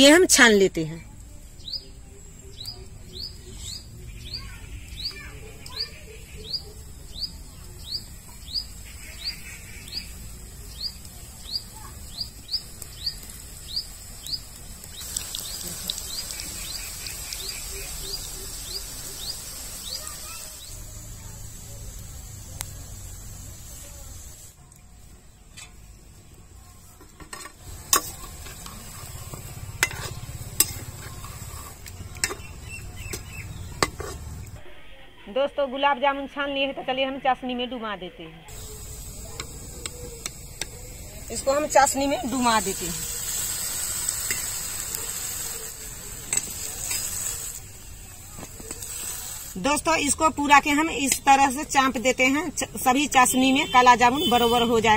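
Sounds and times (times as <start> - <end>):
food sizzling in hot oil: 0.0 - 34.6, 38.5 - 54.9
bird chirping: 1.6 - 20.9, 32.0 - 33.9.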